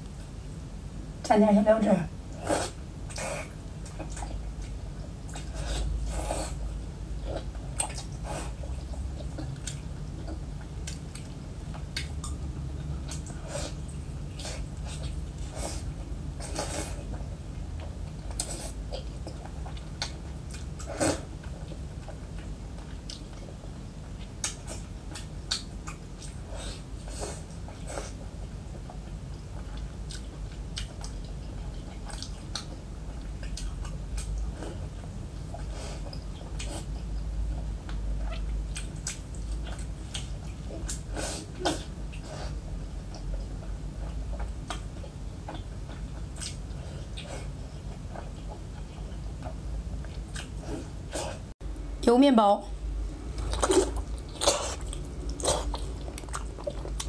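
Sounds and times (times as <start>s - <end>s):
steady low hum: 0.0s - 57.0s
wet chewing mouth smacks: 24.3s - 26.4s, 53.3s - 57.0s.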